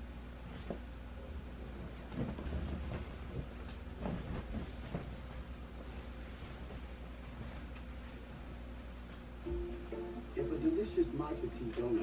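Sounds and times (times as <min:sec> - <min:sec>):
short rustles and knocks: 0:00.4 - 0:08.4.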